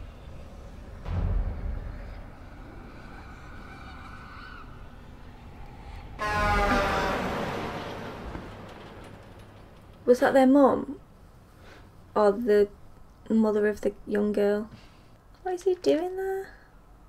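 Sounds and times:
faint eerie music tones: 0.0 - 11.3
loud scream: 1.4 - 8.3.

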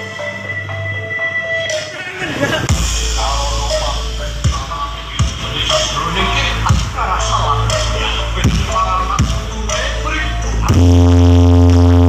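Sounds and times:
loud electronic dance music: 0.0 - 12.0.

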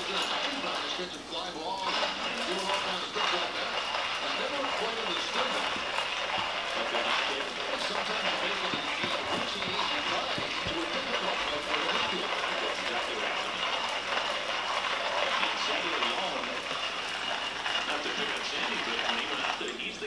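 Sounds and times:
hand coffee grinder crunching beans: 0.0 - 20.0.

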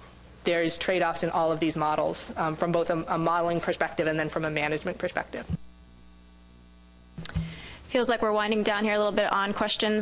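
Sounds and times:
electrical mains hum: 0.0 - 10.0
woman speaking: 0.5 - 5.6, 7.9 - 10.0.

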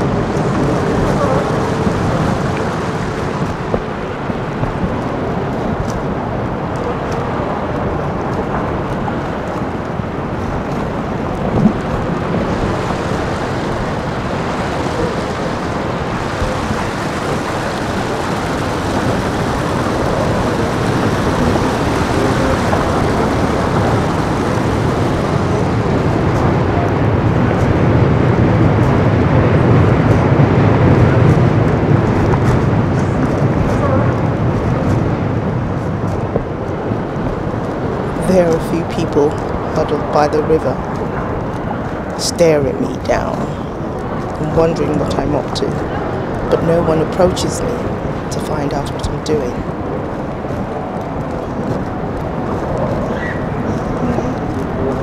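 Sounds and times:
deep rumble: 0.0 - 55.0
engine and traffic noise: 0.0 - 55.0.

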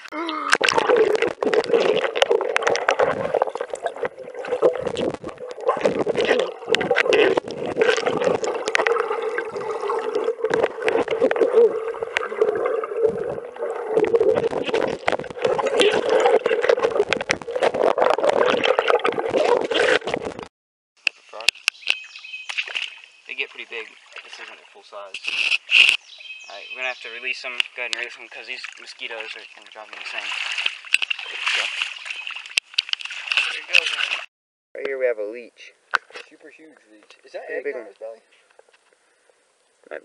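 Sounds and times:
muffled water gurgling underwater: 0.6 - 20.5.

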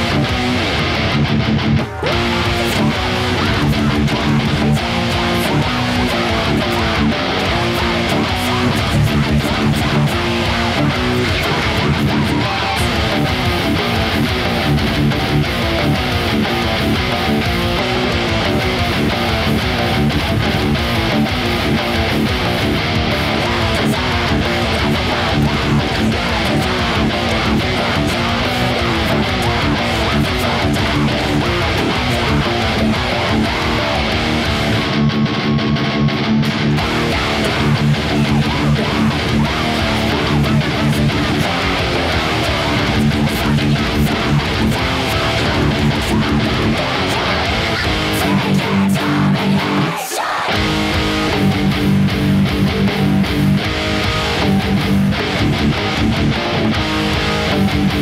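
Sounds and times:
electric guitar riffs: 0.0 - 58.0.

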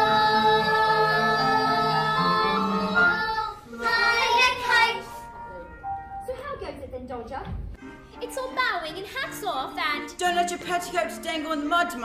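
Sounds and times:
children singing with accompaniment: 0.0 - 5.3.

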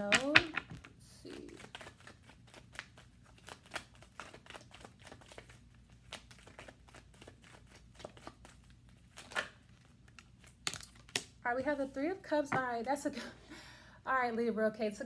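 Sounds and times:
cards shuffling: 0.0 - 11.8.

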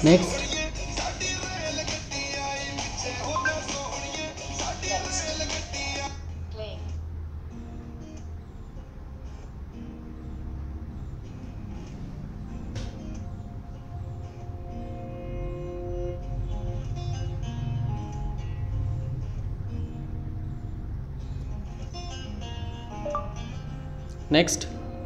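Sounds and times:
song with singing and guitar: 0.0 - 6.2
quiet bell-like music: 3.3 - 3.7, 23.0 - 23.9.

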